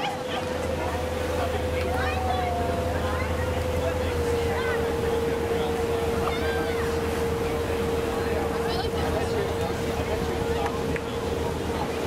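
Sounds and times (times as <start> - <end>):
motorboat engine running: 0.0 - 12.0
wind and water noise: 0.0 - 12.0.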